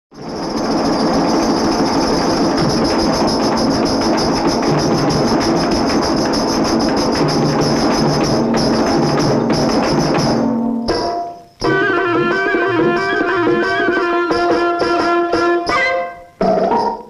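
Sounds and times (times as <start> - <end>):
frame drums beaten fast: 0.1 - 15.8.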